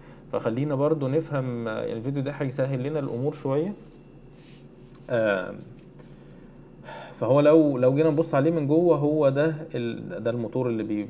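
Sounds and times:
soft intake of breath: 0.0s - 0.4s, 3.8s - 5.2s, 5.9s - 7.2s.

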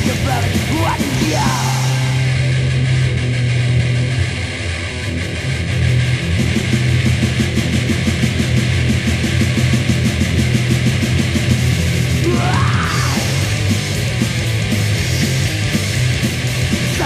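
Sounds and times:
fast driving drum beat: 0.0s - 2.5s, 6.0s - 17.0s
bass guitar: 0.0s - 17.0s
distorted guitars: 0.0s - 17.0s.

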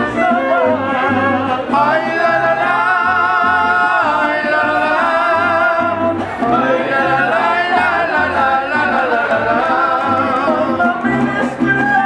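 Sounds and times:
guitar strumming: 0.0s - 12.0s
men singing with vibrato: 0.0s - 12.0s.

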